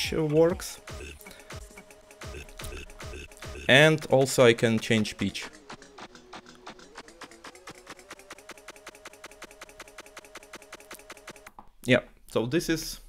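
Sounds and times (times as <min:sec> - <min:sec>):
stuttering buzzy sampler loop: 0:00.0 - 0:11.6.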